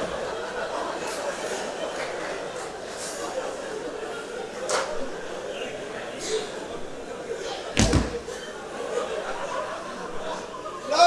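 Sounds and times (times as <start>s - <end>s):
loud slam with low thud: 7.8s - 8.3s.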